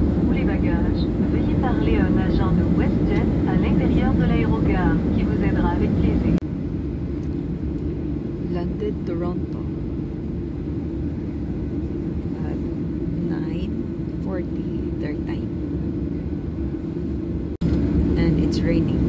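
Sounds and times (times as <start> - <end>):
airliner cabin low rumble: 0.0 - 19.0
voices: 0.3 - 6.4, 8.4 - 9.7, 12.3 - 12.6, 13.2 - 15.5, 18.2 - 19.0.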